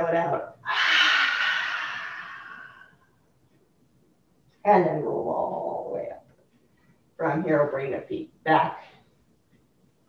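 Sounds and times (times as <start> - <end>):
woman exhaling forcefully: 0.6 - 2.9.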